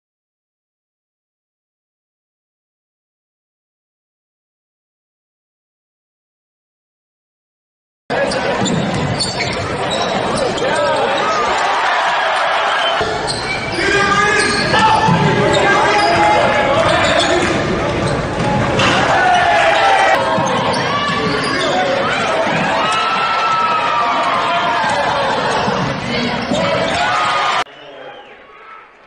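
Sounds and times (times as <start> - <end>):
people's voices in hall: 8.1 - 29.0
basketball bouncing on wooden court: 8.5 - 10.4, 20.2 - 27.1.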